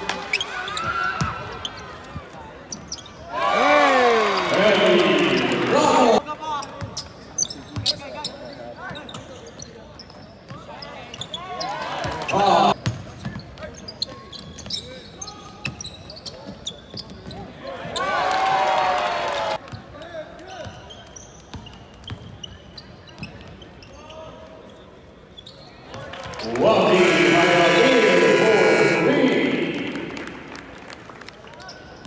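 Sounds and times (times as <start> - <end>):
players and spectators talking: 0.7 - 18.0, 25.7 - 32.0
crowd shouting: 12.3 - 12.8, 26.5 - 30.4
basketball bouncing on court: 12.8 - 13.5.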